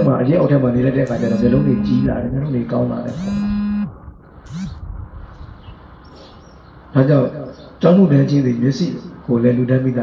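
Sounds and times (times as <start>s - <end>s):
man holding a drawn-out syllable: 1.1s - 2.3s
short rising and falling hum: 1.1s - 2.4s, 3.1s - 5.4s.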